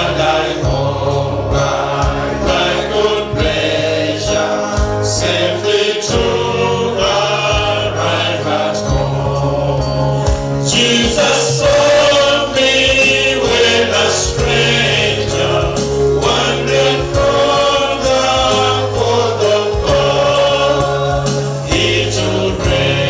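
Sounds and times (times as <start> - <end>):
men's choir singing: 0.0 - 23.0.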